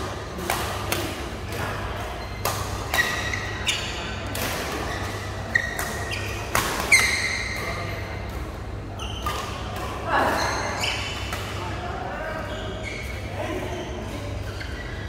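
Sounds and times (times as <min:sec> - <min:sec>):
rackets hitting shuttlecock: 0:00.3 - 0:10.1.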